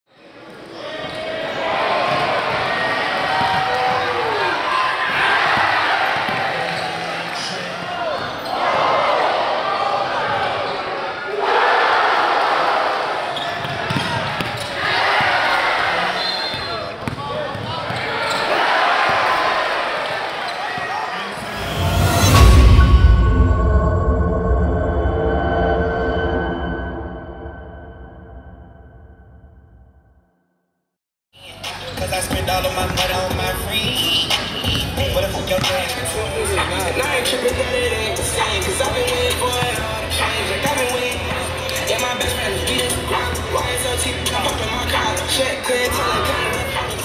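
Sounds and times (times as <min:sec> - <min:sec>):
crowd voices: 0:00.1 - 0:23.4, 0:31.4 - 0:47.0
sneakers squeaking: 0:00.2 - 0:09.0, 0:13.2 - 0:21.5, 0:31.4 - 0:37.0.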